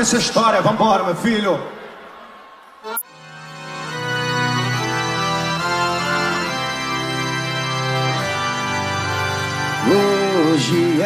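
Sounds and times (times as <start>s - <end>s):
organ-like keyboard chords: 2.8s - 11.0s.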